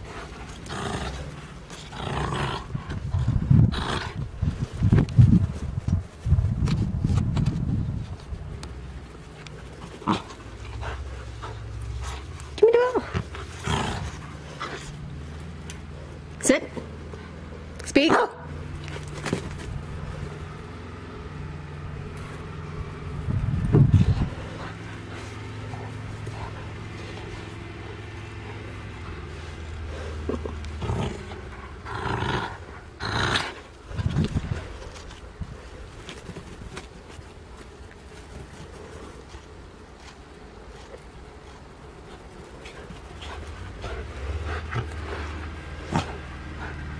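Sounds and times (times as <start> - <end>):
dog panting: 9.4 - 16.3, 23.8 - 31.9, 40.7 - 46.9.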